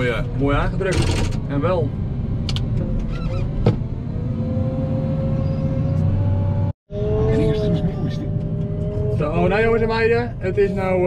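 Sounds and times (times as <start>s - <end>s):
loader engine rumble: 0.0s - 11.0s.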